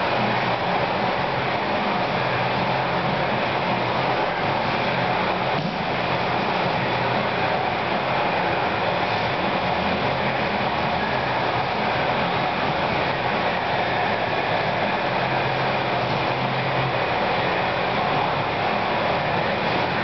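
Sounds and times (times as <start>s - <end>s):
steady rushing noise: 0.0s - 20.0s.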